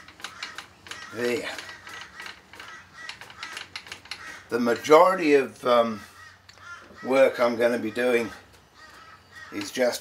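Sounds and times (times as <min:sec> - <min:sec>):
milling machine leadscrew clicking: 0:00.0 - 0:04.9.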